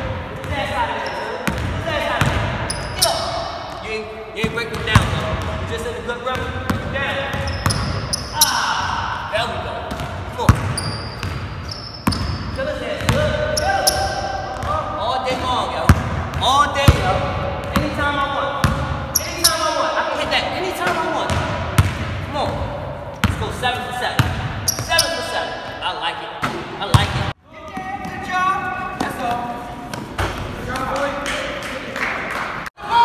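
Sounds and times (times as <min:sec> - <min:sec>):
basketball bouncing on wooden floor: 0:04.4 - 0:05.6, 0:09.9 - 0:18.0.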